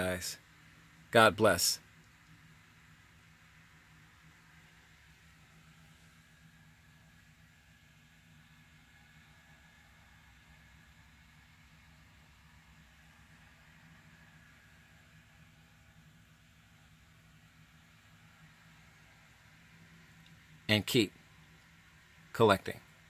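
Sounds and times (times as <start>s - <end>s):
faint steady hiss: 0.0s - 23.0s
low hum: 0.0s - 23.0s.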